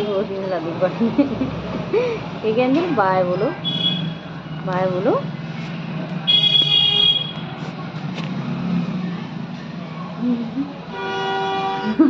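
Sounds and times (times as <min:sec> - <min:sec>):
vehicle horn: 0:02.9 - 0:04.3, 0:06.3 - 0:07.5, 0:10.9 - 0:12.0.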